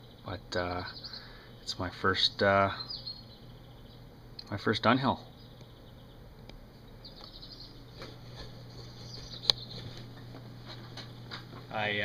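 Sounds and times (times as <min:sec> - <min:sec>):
steady low hum: 0:00.0 - 0:12.0
faint handling noises: 0:07.9 - 0:11.7.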